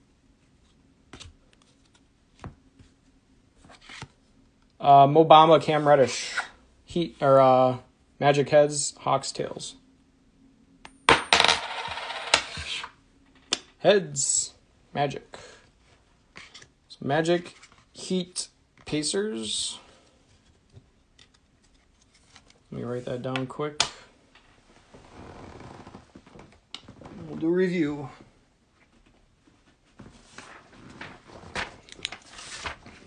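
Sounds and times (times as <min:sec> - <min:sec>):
coin bouncing on hard tabletop: 0:10.9 - 0:12.7.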